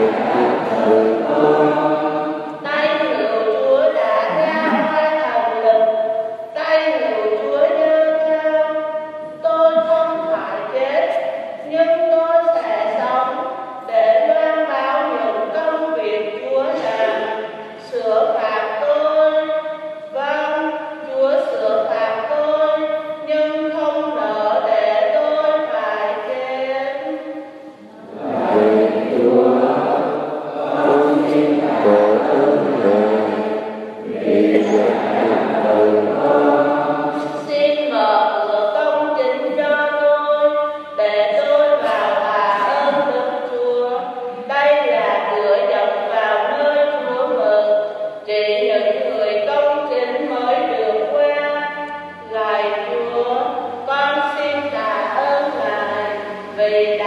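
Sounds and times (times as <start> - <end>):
choir singing: 0.0 - 2.6, 27.8 - 37.5.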